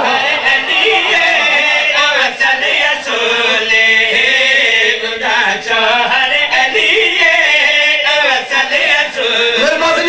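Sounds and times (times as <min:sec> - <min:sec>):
man chanting devotional verse: 0:00.1 - 0:10.0.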